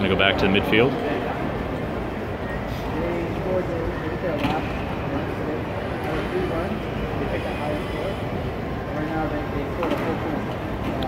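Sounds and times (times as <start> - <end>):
hall background hum: 0.0 - 11.0
people talking indistinctly: 2.6 - 10.6.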